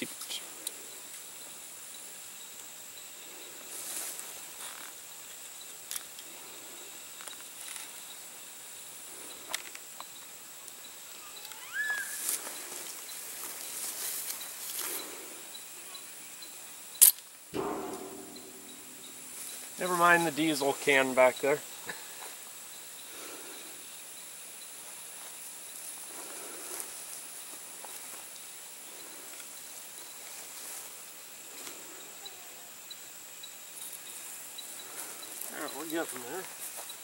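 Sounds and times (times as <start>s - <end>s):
insect drone: 0.0s - 37.0s
sharp snap: 17.0s - 20.0s.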